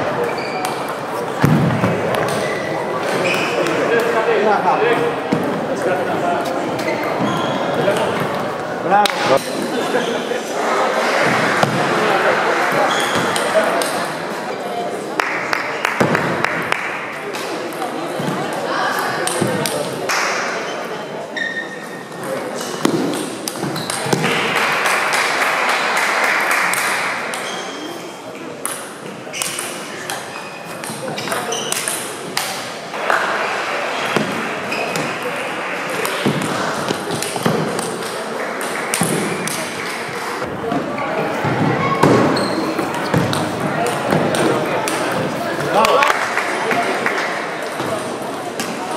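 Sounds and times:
voices echoing in a hall: 0.0 - 48.9.

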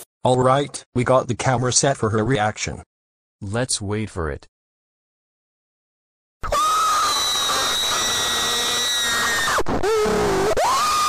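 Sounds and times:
cartoon girl screaming: 6.4 - 11.0.

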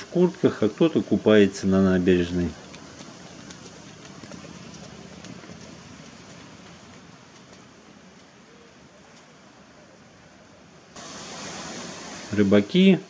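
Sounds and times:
sea surf washing against shore: 0.0 - 13.0.

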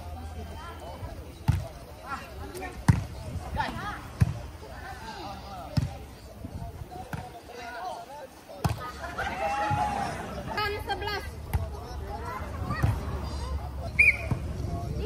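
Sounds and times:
players shouting: 8.7 - 14.4.

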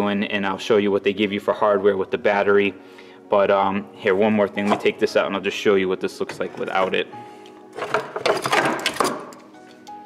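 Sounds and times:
background music: 0.0 - 10.0
plastic tray knocking and clattering: 7.8 - 9.3.

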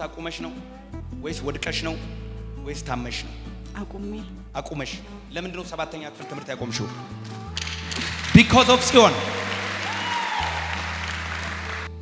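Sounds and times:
congregation applauding: 7.6 - 12.0.

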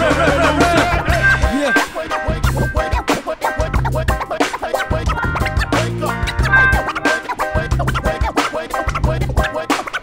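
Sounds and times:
vinyl record scratching: 0.8 - 10.0
deep bass line: 4.9 - 7.0.

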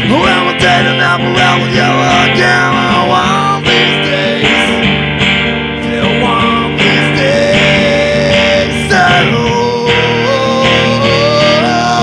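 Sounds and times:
live rock band playing: 0.0 - 12.0
strummed acoustic guitar: 0.0 - 12.0.

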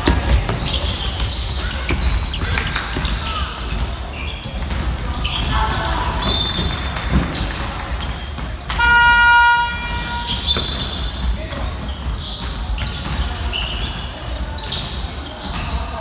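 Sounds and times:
ball bouncing: 0.0 - 15.8
voices on court: 0.0 - 16.0
basketball buzzer tone: 8.7 - 10.7.

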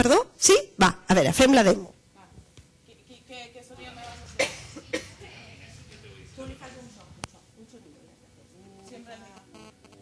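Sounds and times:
faint murmur of voices: 2.2 - 10.0
person coughing: 4.4 - 5.3.

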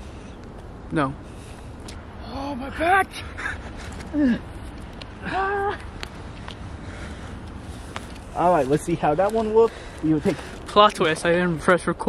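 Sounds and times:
man crying out in pain: 5.2 - 5.8.

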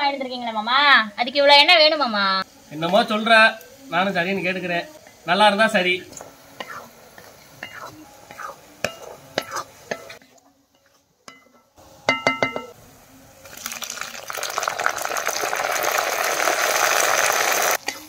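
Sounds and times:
onions frying in oil: 0.0 - 18.0
tomatoes sizzling in hot oil: 0.0 - 18.0
metal ladle scraping a pan: 6.6 - 11.7.

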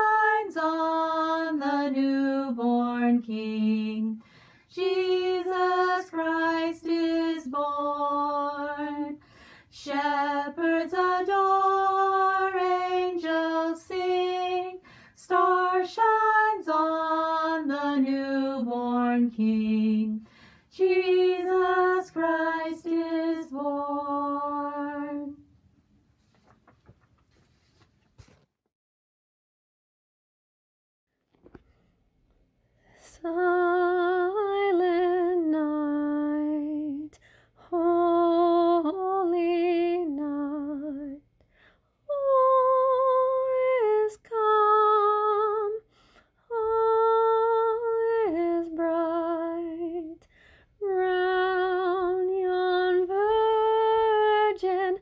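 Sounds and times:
person singing a hymn: 0.0 - 25.4, 33.1 - 41.2, 42.1 - 45.9, 50.8 - 55.0.

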